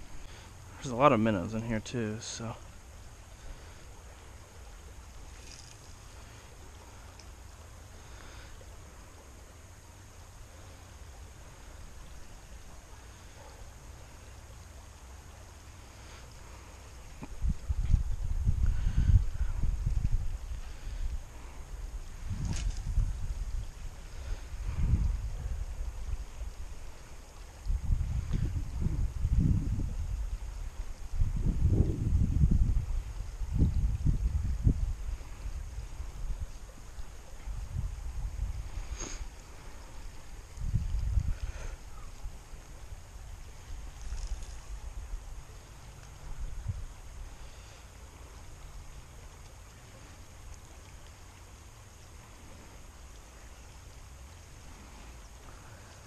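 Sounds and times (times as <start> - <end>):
creek flowing: 0.0 - 56.0
wind buffeting microphone: 17.1 - 45.5, 46.2 - 47.3.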